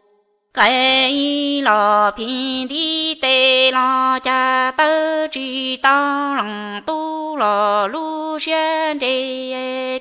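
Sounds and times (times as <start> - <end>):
person singing chant-like song: 0.0 - 10.0.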